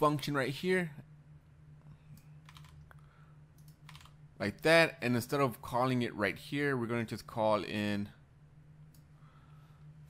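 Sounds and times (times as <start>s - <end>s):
steady low hum: 0.0s - 10.0s
computer keyboard keys clicking: 2.4s - 2.8s, 3.6s - 4.2s.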